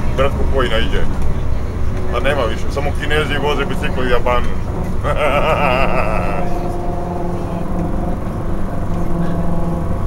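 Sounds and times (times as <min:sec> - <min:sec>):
bus engine humming: 0:00.0 - 0:10.0.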